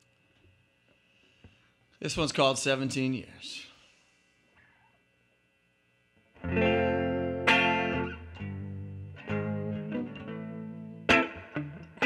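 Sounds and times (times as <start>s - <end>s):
electric guitar chords ringing: 6.4s - 12.0s.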